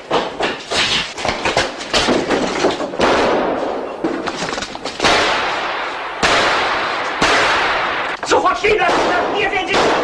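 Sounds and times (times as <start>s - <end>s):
pistol shots with echo: 5.0s - 10.0s.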